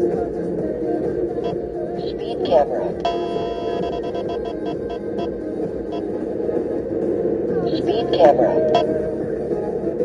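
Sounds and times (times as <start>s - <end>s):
road and engine noise: 0.0s - 10.0s
rapid electronic warning beeps: 1.4s - 6.1s, 7.8s - 8.9s.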